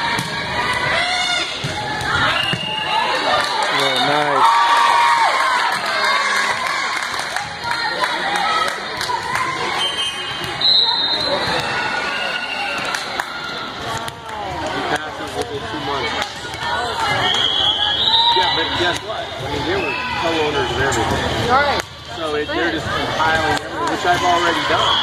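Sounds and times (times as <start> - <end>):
volleyball bouncing on court: 0.0 - 2.8
crowd chattering in echoing gym: 0.0 - 25.0.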